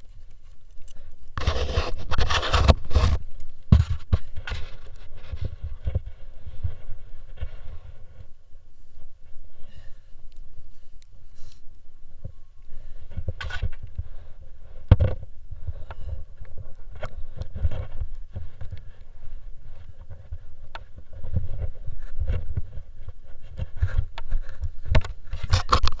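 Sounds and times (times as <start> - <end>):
clothing rubbing on microphone: 0.0 - 26.0.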